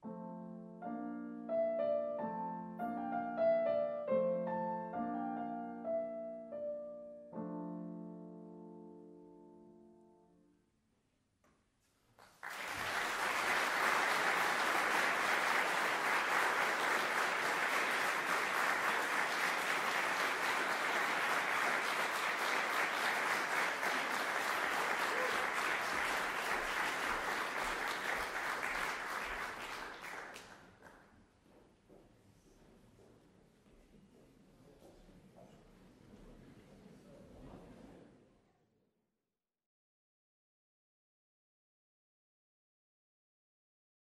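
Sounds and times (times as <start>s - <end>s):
audience applause: 12.2s - 31.0s.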